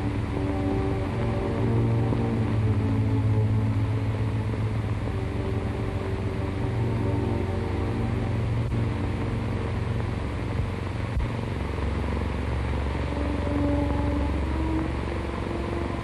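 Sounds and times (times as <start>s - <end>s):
brooding orchestral music: 0.0s - 9.1s, 12.9s - 16.0s
soundtrack hiss: 0.0s - 16.0s.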